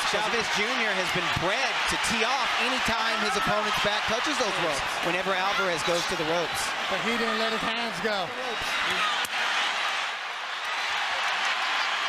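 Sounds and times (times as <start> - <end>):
arena crowd roar: 0.0 - 12.0.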